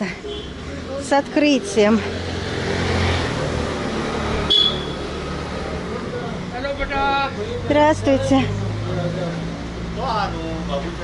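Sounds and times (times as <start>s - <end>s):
street traffic noise: 0.0s - 11.0s
short high-pitched beep: 4.5s - 5.0s.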